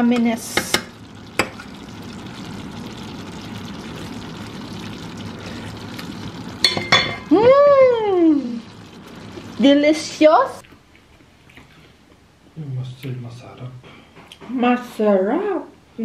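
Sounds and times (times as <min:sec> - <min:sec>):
meat sizzling in a pan: 0:00.0 - 0:10.6.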